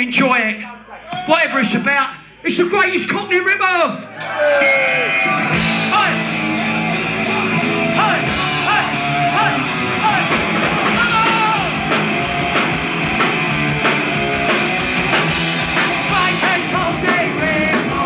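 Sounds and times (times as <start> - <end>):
bass guitar: 5.2 - 18.0
distorted electric guitar: 5.2 - 18.0
drum kit: 5.4 - 18.0
person singing: 15.8 - 18.0.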